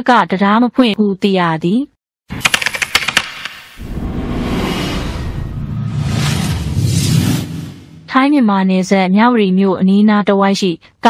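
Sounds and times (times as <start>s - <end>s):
low rumbling: 3.8s - 8.2s.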